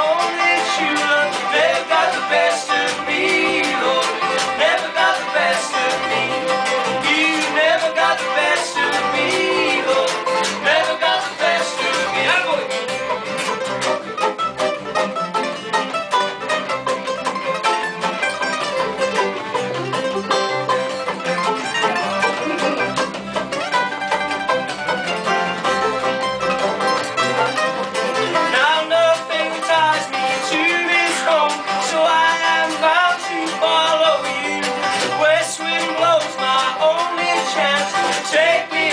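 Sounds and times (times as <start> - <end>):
person singing: 0.0 - 12.8, 28.3 - 38.9
acoustic folk string band: 0.0 - 38.9.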